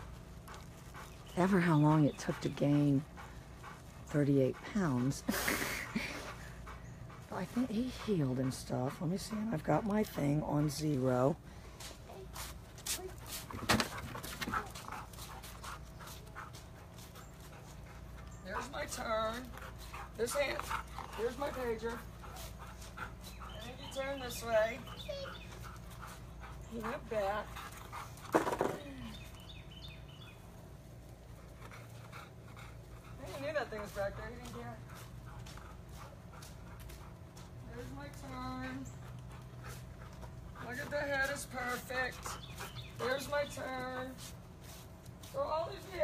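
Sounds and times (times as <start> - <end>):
dog panting: 0.0 - 28.5, 29.1 - 46.0.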